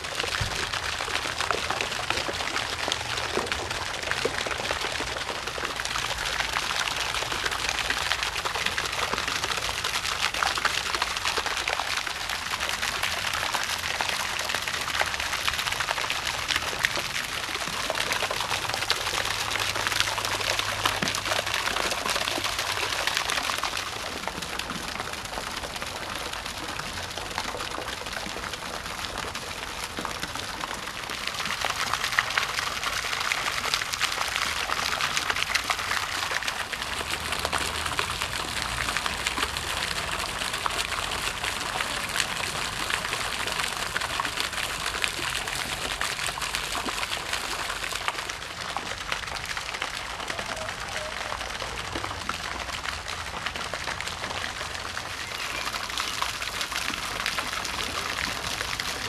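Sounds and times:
pond fountain splashing: 0.0s - 59.0s.

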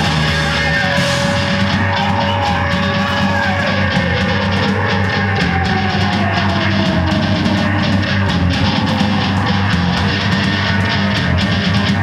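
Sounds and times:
distorted electric guitar: 0.0s - 12.0s
drum kit: 0.0s - 12.0s.

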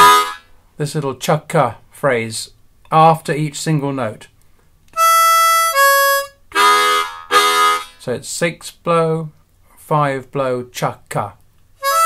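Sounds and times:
harmonica blow note: 0.0s - 0.5s, 5.0s - 8.0s
harmonica chordal chugs: 0.0s - 0.5s, 5.0s - 8.0s, 11.8s - 12.0s.

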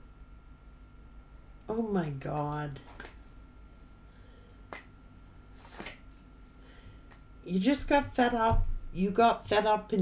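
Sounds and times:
card snapping against deck: 2.3s - 3.2s, 4.7s - 4.9s, 5.6s - 6.0s.

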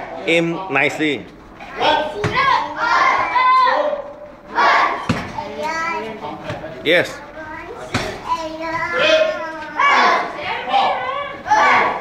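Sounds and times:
children talking in echoing hall: 1.4s - 12.0s
loud shout: 1.8s - 5.1s, 8.9s - 12.0s.

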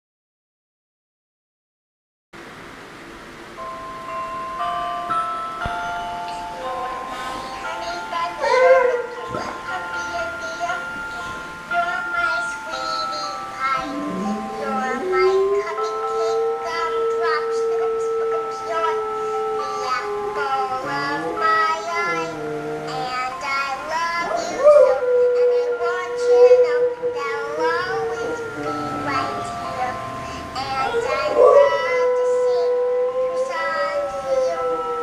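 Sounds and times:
music: 2.6s - 35.0s
held electronic notes: 3.3s - 35.0s
dog howling: 8.4s - 9.2s, 13.8s - 23.4s, 24.1s - 30.0s, 30.6s - 35.0s.

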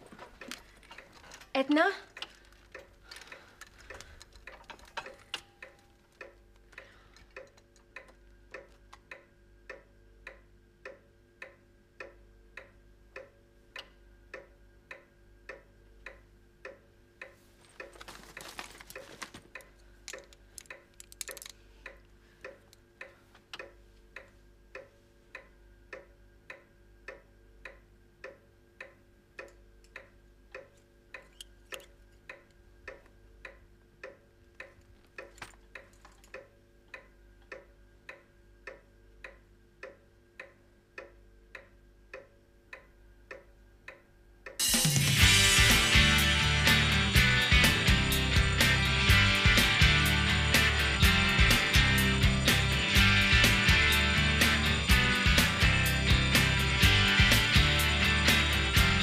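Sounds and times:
clock ticking: 0.0s - 59.0s.

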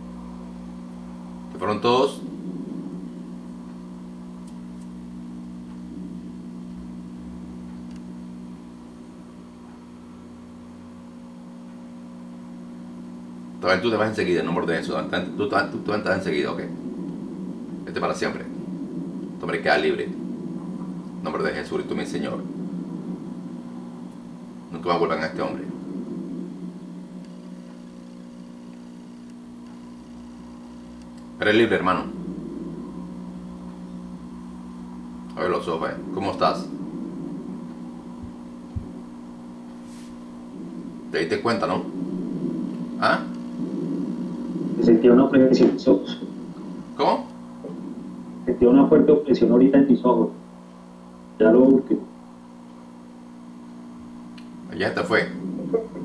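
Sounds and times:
low electrical hum: 0.0s - 56.0s
faint ticks: 4.4s - 9.9s, 26.8s - 31.4s, 42.7s - 43.6s.

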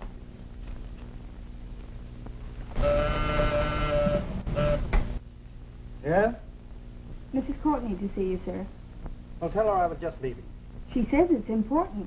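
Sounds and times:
intercom buzzer: 2.8s - 5.0s.

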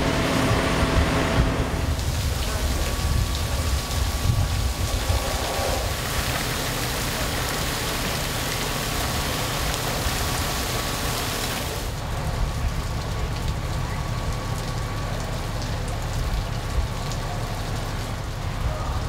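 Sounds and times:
low rumble: 0.0s - 6.7s
fire hose water spraying: 0.0s - 19.0s.

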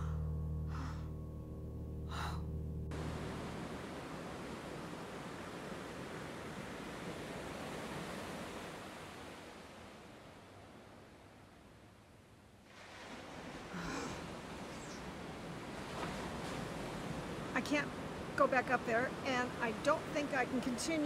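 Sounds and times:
woman gasping: 0.0s - 1.1s, 2.1s - 2.5s, 13.7s - 14.3s
low music chord: 0.0s - 4.4s
ocean surf: 2.9s - 11.2s, 12.7s - 21.0s.

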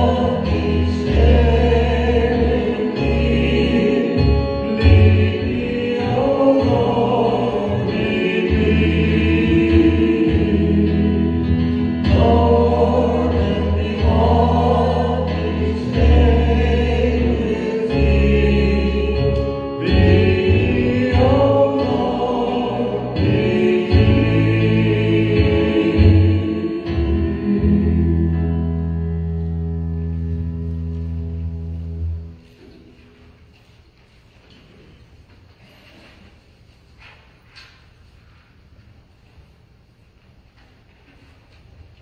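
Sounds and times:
group singing a hymn: 0.0s - 30.6s
held low bass notes: 0.0s - 32.9s.

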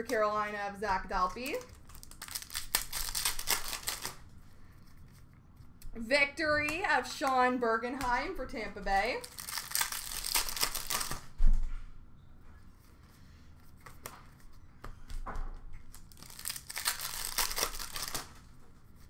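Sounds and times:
card pack wrappers tearing: 1.1s - 4.2s, 9.0s - 11.3s, 15.9s - 18.5s.

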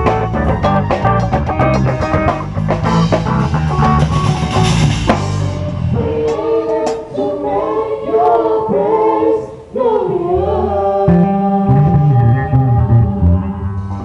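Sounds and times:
rock band playing loudly: 0.0s - 6.0s
voices singing held notes: 4.2s - 13.7s.

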